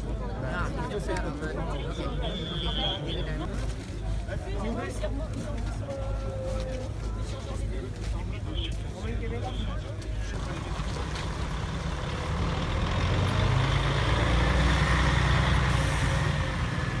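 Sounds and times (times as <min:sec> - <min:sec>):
diesel coach engine rumble: 0:05.5 - 0:17.0.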